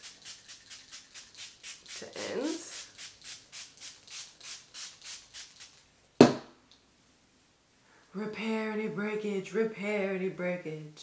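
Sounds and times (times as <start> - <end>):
spray bottle hissing sprays: 0.0 - 5.8.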